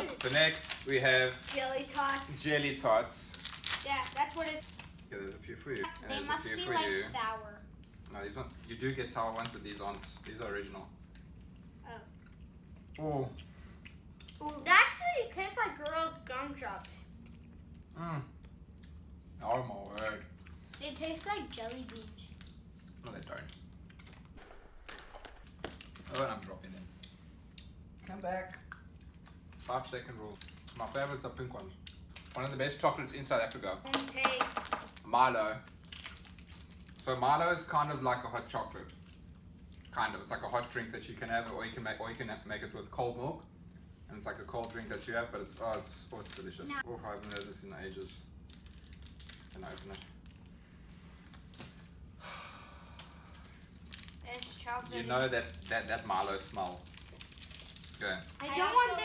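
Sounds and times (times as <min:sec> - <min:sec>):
wrapper rustling and clicking: 0:00.0 - 0:02.4, 0:03.2 - 0:05.0, 0:45.5 - 0:47.6, 0:48.5 - 0:50.5, 0:53.7 - 0:59.0
plastic packet crinkling: 0:00.0 - 0:05.1, 0:20.7 - 0:23.4, 0:33.9 - 0:37.0, 0:45.5 - 0:50.6, 0:53.4 - 0:59.0.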